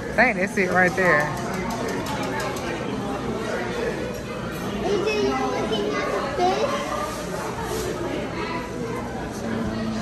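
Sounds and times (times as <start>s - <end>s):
chatter of voices: 0.0s - 10.0s
children's voices: 4.7s - 10.0s.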